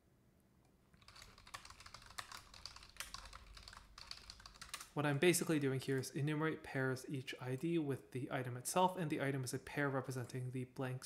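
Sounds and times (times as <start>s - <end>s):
typing on computer keyboard: 1.0s - 5.0s.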